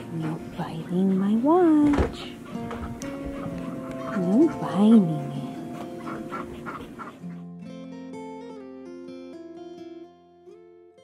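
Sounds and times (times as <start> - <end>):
acoustic guitar music: 1.5 - 11.0.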